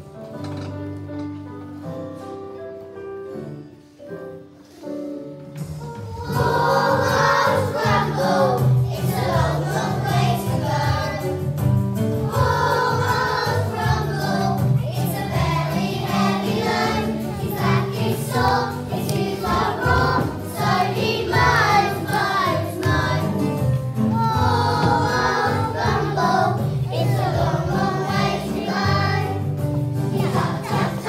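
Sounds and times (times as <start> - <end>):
instrumental accompaniment: 0.0 - 31.0
children singing: 5.8 - 11.4, 12.2 - 31.0.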